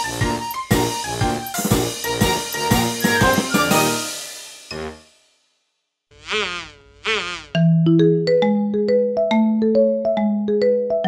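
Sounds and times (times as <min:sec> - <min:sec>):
music: 0:00.0 - 0:05.7, 0:07.6 - 0:11.0
short buzzy wavering tone: 0:06.1 - 0:07.6.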